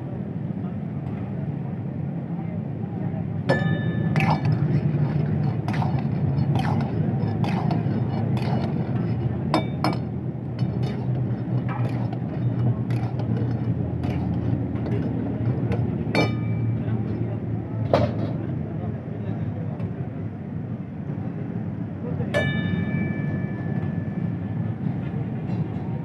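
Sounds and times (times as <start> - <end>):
metal utensils scraping steel woks: 3.5 - 16.6.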